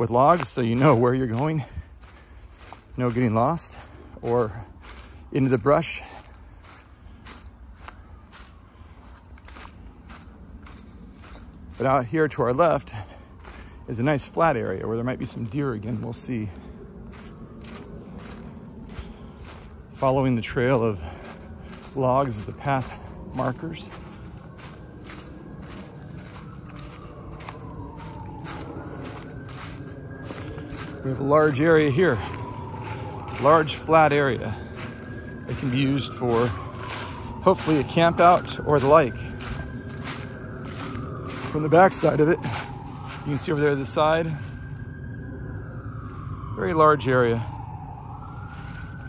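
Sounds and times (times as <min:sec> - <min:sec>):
low rumble: 0:00.0 - 0:46.6
footsteps crunching dry leaves: 0:00.0 - 0:49.0.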